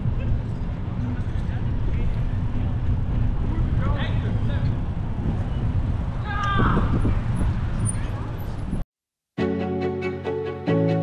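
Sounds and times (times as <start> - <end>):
steady low rumble: 0.0 - 8.8.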